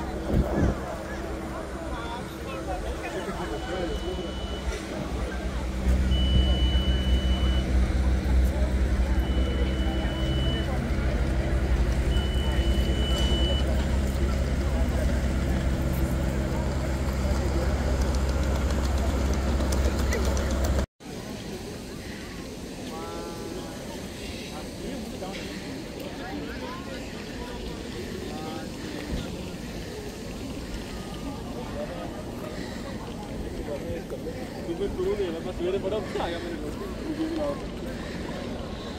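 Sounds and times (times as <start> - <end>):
steady low rumble and hum: 0.0 - 20.9
crowd talking indistinctly: 0.0 - 38.9
long high beeps: 3.1 - 5.1, 5.8 - 7.9, 9.0 - 11.0, 12.1 - 13.7.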